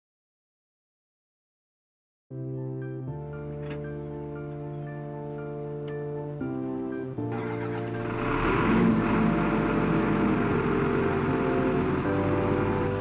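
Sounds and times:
background music: 2.3s - 13.0s
diesel engine running: 7.3s - 13.0s.

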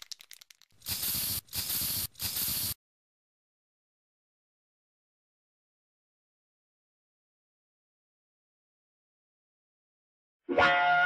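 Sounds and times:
short hissing bursts: 0.8s - 2.8s.

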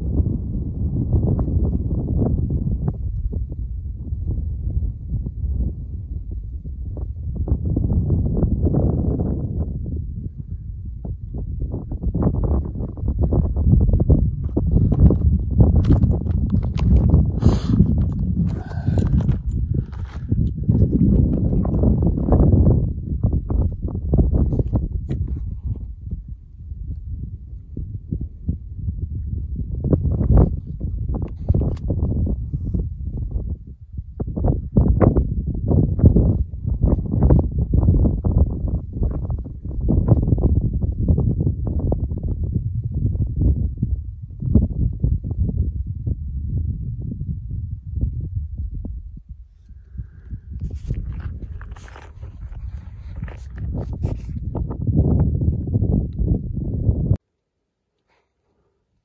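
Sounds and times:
wind buffeting microphone: 0.0s - 57.2s
footsteps crunching on gravel: 15.0s - 21.8s, 50.6s - 54.2s.

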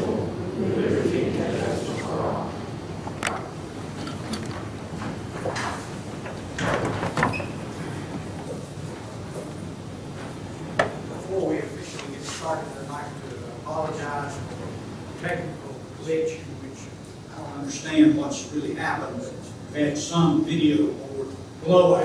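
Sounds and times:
voices: 0.0s - 3.5s, 10.2s - 22.0s
chairs shifting and knocking: 3.1s - 11.1s.

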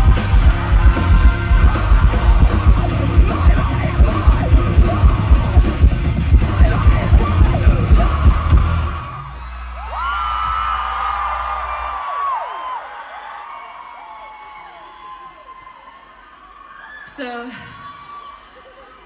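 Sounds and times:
live rock band playing: 0.0s - 9.3s
crowd cheering and whooping: 0.0s - 19.0s.

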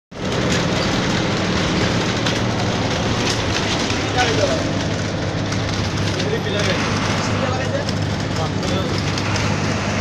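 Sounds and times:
bus engine droning: 0.1s - 10.0s
road and wind noise: 0.1s - 10.0s.

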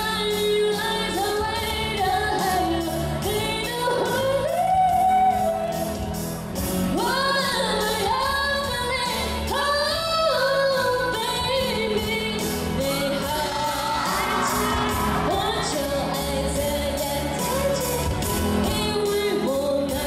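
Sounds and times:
woman singing into microphone: 0.0s - 6.0s, 6.8s - 20.0s
pop backing track with beat: 0.0s - 20.0s.

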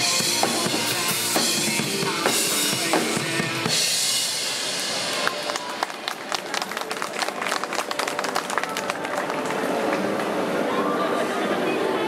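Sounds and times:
crowd chatter: 0.0s - 12.0s
crowd clapping: 4.9s - 10.4s.

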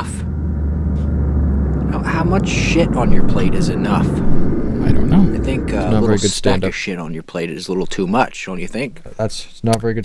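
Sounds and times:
spaceship engine rumble: 0.0s - 6.9s.

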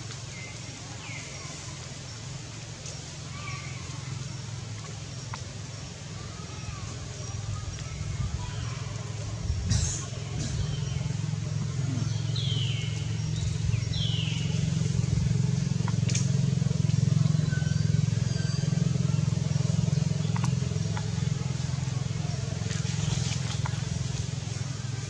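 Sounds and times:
low engine drone: 0.0s - 25.0s
faint clicks: 4.7s - 5.6s, 15.8s - 17.0s, 20.1s - 21.3s.

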